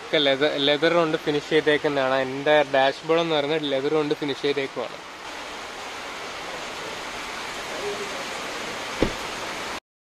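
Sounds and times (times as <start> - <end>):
rain on car roof: 5.2 - 9.8
sharp knock: 9.0 - 9.2.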